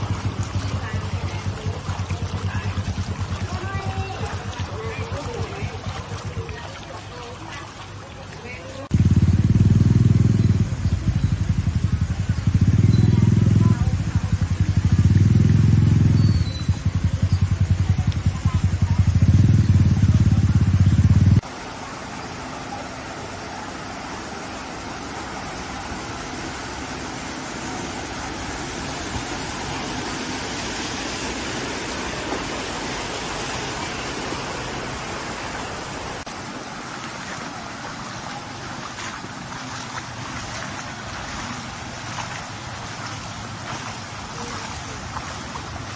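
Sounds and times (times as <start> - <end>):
rushing water: 0.0 - 45.9
vehicle engine noise: 0.0 - 45.9
heavy low rumble: 8.9 - 21.4.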